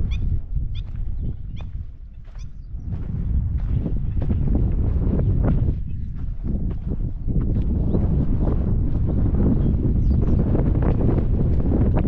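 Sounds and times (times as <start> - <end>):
footsteps on sandy dirt: 0.0 - 12.0
wind buffeting microphone: 0.0 - 12.0.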